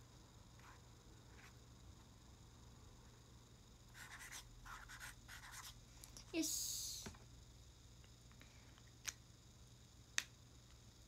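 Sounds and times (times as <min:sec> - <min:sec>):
pen scratching on paper: 0:04.0 - 0:05.7.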